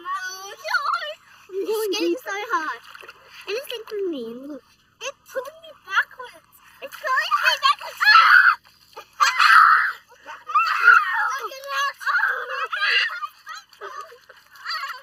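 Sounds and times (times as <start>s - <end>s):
young children squealing: 7.9s - 15.0s.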